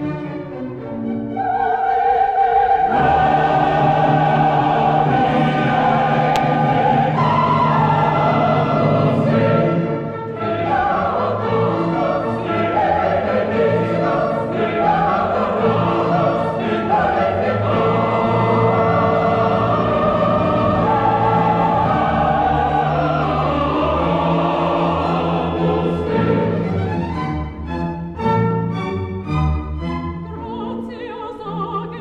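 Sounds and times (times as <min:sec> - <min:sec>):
orchestra playing: 0:00.0 - 0:31.7
choir singing: 0:01.1 - 0:27.4, 0:30.2 - 0:32.0.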